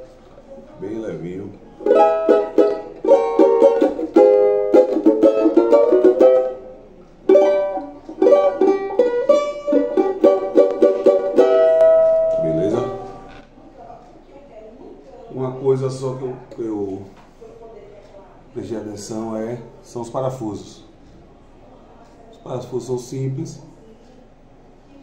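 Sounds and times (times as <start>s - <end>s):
banjo strummed in chord runs: 1.8s - 13.3s.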